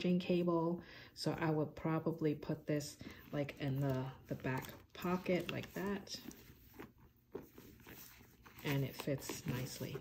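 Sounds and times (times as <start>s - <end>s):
soft rustling: 3.0s - 10.0s.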